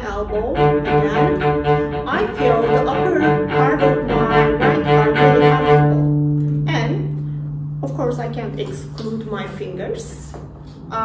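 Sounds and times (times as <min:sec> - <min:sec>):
cello staccato notes: 0:00.0 - 0:10.6.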